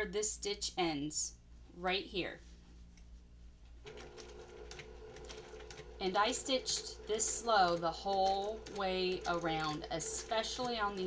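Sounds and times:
sewing machine running: 0:03.8 - 0:11.0
needle ticks: 0:07.1 - 0:11.0.

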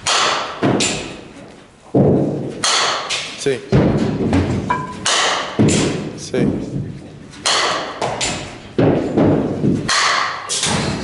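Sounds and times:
bat striking softballs: 0:00.0 - 0:01.2, 0:02.0 - 0:06.7, 0:07.4 - 0:11.0
balls thumping into netting: 0:00.0 - 0:01.3, 0:01.9 - 0:11.0.

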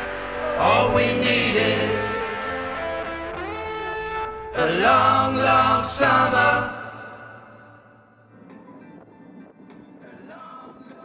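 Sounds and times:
guitar band music: 0:00.0 - 0:07.2.

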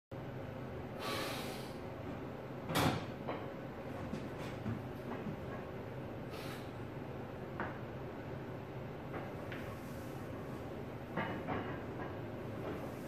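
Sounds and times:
short hissing breath: 0:01.0 - 0:01.9, 0:06.3 - 0:06.8.

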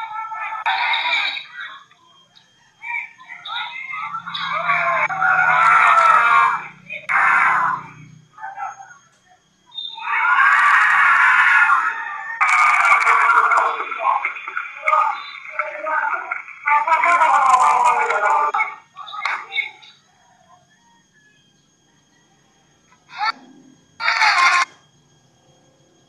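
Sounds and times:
people shouting and screaming: 0:00.0 - 0:20.7, 0:23.0 - 0:24.8.

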